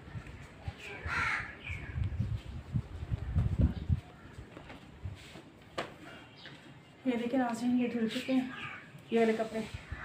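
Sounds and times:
crow cawing: 1.0s - 1.8s, 8.5s - 8.9s.

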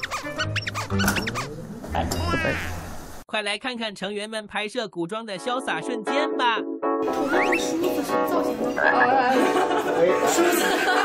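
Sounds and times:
squeaky cartoon chirps: 0.0s - 2.8s
background music: 5.3s - 11.0s.

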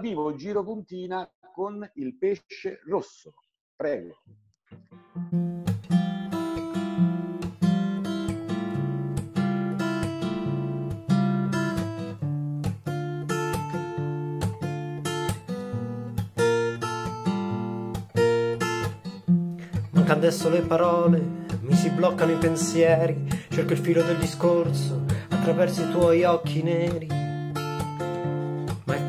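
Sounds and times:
acoustic guitar chords: 4.7s - 29.0s.

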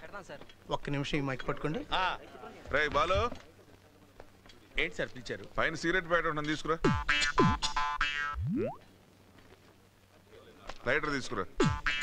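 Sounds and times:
falling boing sound effects: 8.3s - 8.8s
rising glide sound effect: 8.4s - 8.8s.

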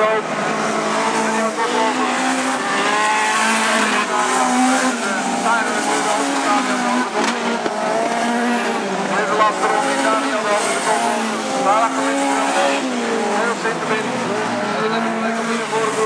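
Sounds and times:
race car engines revving: 0.0s - 16.0s.

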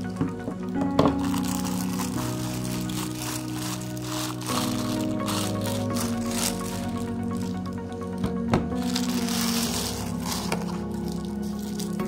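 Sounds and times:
background music with held notes: 0.0s - 12.0s
plastic packaging crinkling: 0.0s - 12.0s.

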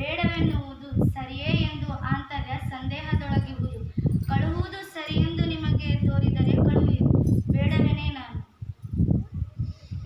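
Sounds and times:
girl speaking in wavering tones: 0.0s - 8.5s.

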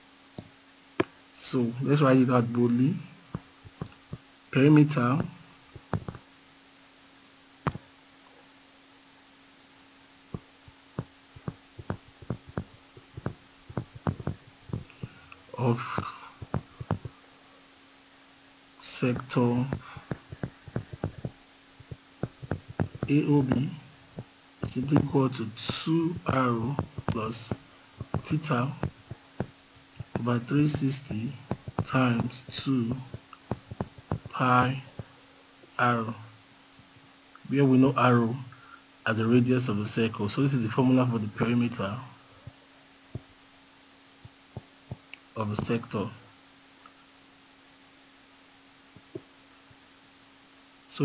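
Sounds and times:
faint electrical hum: 0.0s - 51.0s
stylus clicks and taps: 3.3s - 4.2s, 5.2s - 6.2s, 7.6s - 7.9s, 10.3s - 15.4s, 16.0s - 17.1s, 19.1s - 34.4s
soft low knocks: 5.2s - 6.2s, 10.3s - 15.2s, 15.8s - 17.2s, 19.1s - 35.1s.

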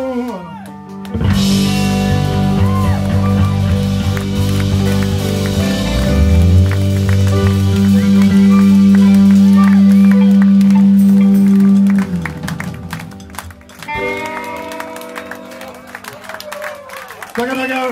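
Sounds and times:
live rock band playing: 0.0s - 17.9s
scattered clapping: 2.9s - 17.9s.

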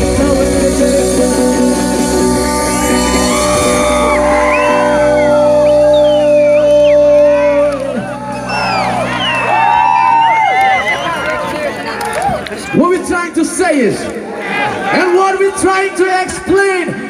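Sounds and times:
reggae band chord: 0.0s - 10.2s
audience whooping and shouting: 1.6s - 12.8s.

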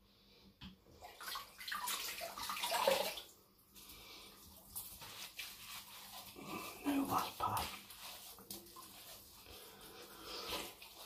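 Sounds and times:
water splashing at a sink: 0.8s - 11.0s.

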